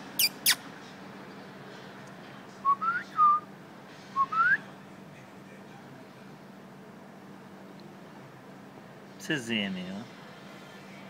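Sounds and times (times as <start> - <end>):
sharp falling squeaks: 0.2 - 0.6
person whistling: 2.7 - 3.4, 4.2 - 4.6.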